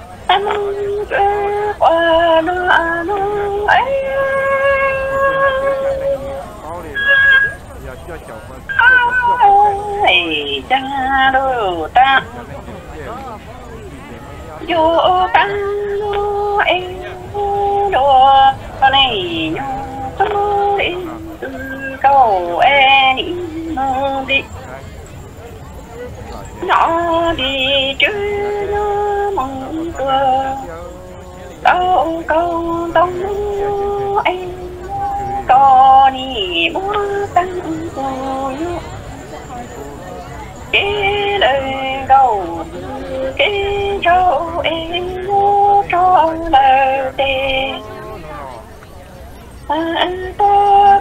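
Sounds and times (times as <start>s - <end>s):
person singing wavering notes: 0.0s - 12.2s, 14.5s - 51.0s.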